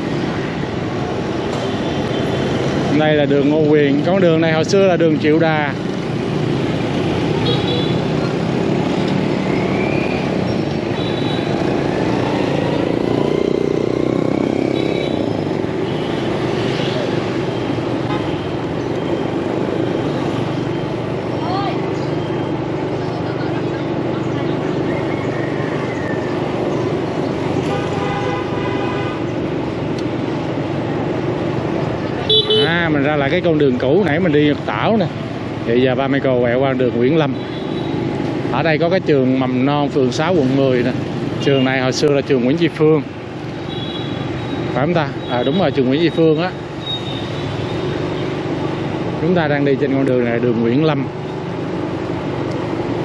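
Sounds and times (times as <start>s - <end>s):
motorbike traffic: 0.0s - 53.0s.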